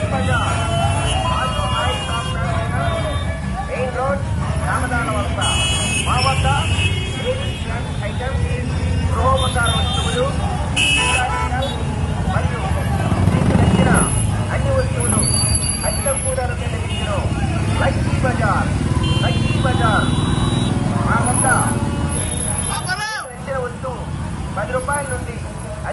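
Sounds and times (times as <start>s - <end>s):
vehicle horns: 0.0s - 12.3s, 13.0s - 23.0s
loud overlapping voices: 0.0s - 25.9s
motorcycle engines rumbling: 0.0s - 25.9s.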